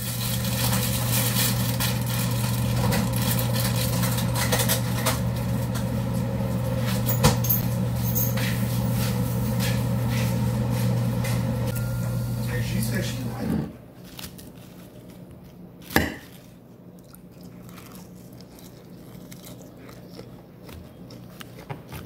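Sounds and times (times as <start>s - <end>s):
motor humming: 0.0s - 13.7s.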